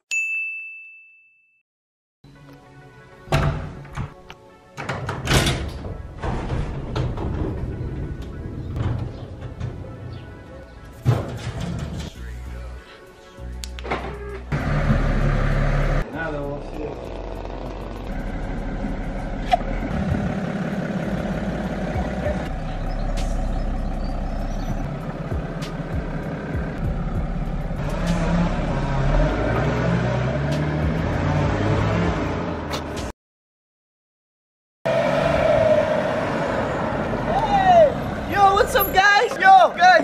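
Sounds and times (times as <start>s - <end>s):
background music: 2.2s - 20.2s, 21.3s - 33.1s
traffic: 7.6s - 11.0s, 12.1s - 33.1s, 34.9s - 40.0s
car engine: 14.4s - 33.0s, 34.9s - 38.4s.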